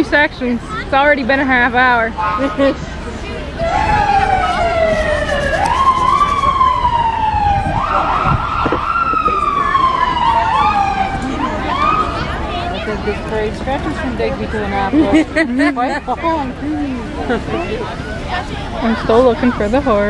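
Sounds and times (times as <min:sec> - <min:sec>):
emergency vehicle siren wailing: 0:02.1 - 0:13.3.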